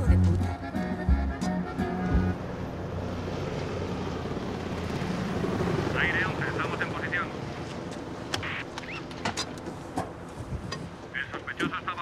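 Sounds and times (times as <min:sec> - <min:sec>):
helicopter rotor and engine: 0:00.9 - 0:12.0.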